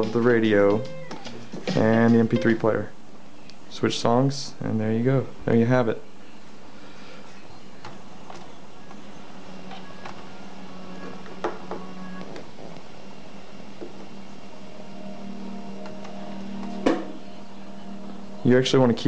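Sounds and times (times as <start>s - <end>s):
quiet music through speaker: 0.0s - 19.0s.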